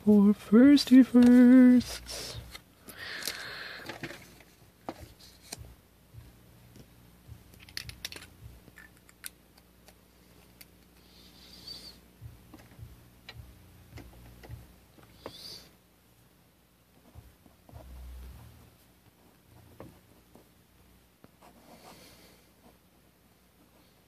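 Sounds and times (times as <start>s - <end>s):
faint low hum: 0.0s - 24.0s
pen and card clicks and taps: 7.5s - 11.0s.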